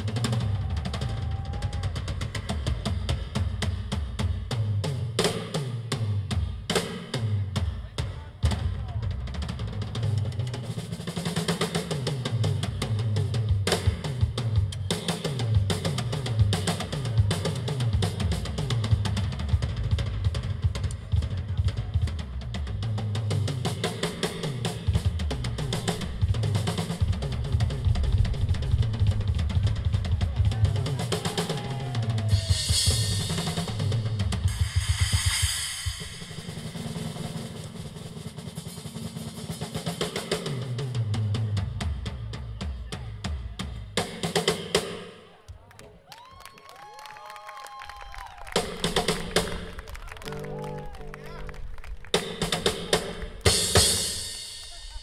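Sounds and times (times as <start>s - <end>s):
drum kit solo: 0.0s - 45.1s, 47.9s - 55.0s
cymbal wash: 32.4s - 38.2s.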